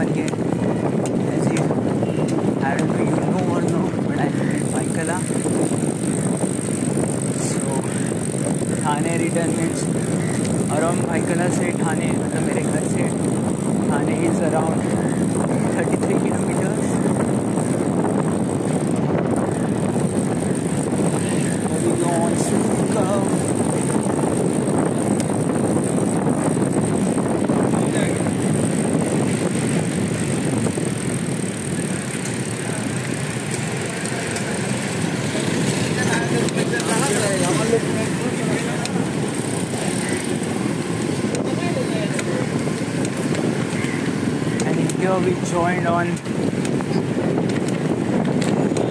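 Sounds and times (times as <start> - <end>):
bike tyre and road noise: 0.0 - 48.9
passing city traffic: 0.0 - 48.9
wind buffeting microphone: 0.0 - 48.9.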